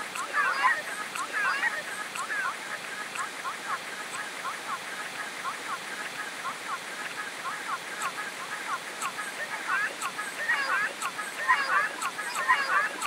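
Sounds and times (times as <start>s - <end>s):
overlapping child voice glides: 0.0s - 13.0s.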